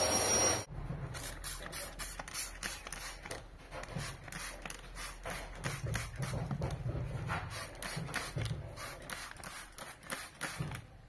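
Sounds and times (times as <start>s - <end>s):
spray bottle squirts: 1.1s - 10.8s.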